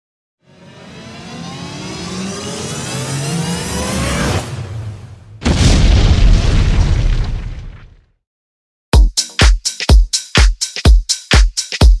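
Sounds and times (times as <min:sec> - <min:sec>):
explosion boom: 0:05.4 - 0:08.1.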